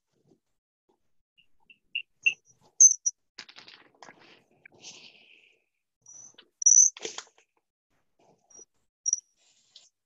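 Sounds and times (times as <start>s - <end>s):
high-pitched chirps: 1.7s - 3.1s, 6.1s - 6.9s.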